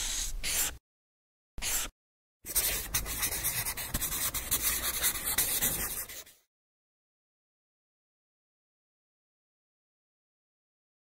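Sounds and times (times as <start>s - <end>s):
pen scratching on drawing surface: 0.0s - 0.8s, 1.6s - 6.5s.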